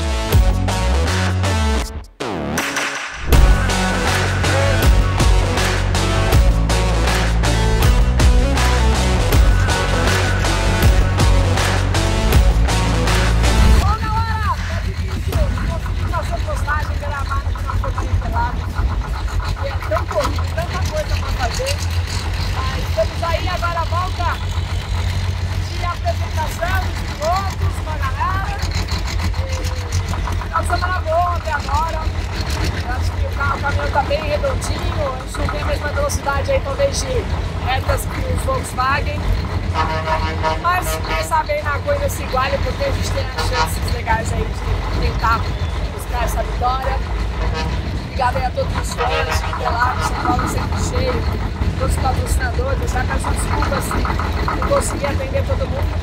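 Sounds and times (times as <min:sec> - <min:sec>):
background music: 0:00.0 - 0:28.1
steady low rumble: 0:03.2 - 0:56.0
woman talking: 0:13.8 - 0:24.5, 0:25.5 - 0:32.2, 0:32.8 - 0:39.3, 0:40.4 - 0:47.0, 0:48.1 - 0:56.0.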